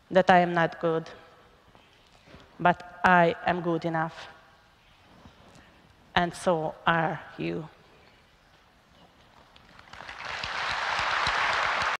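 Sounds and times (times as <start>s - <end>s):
audience applauding: 9.7s - 12.0s.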